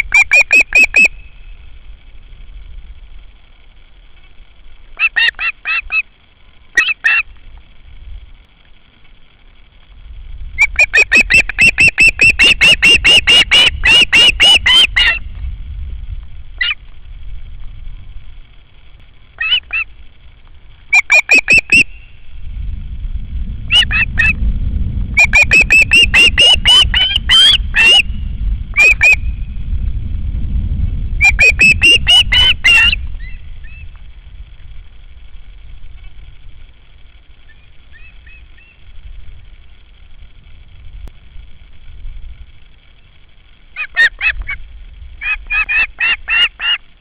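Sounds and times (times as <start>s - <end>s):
osprey shrill whistled calls: 0.0s - 1.5s, 6.8s - 7.2s, 10.6s - 15.2s, 16.6s - 16.8s, 19.4s - 19.9s, 20.9s - 22.2s, 23.7s - 24.4s, 25.2s - 29.4s, 31.2s - 33.9s, 37.4s - 38.8s
low rumble: 0.0s - 47.0s.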